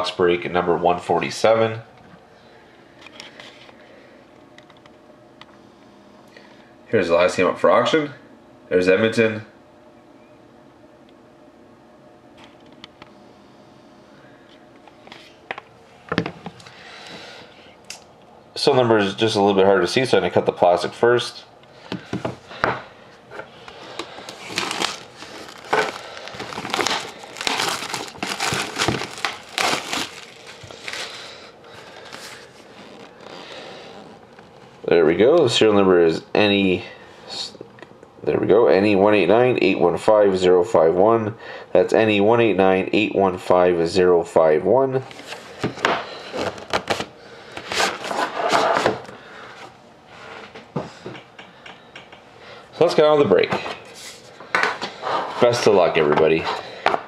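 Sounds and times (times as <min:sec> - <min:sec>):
plastic wrap crinkling: 0:23.8 - 0:34.6.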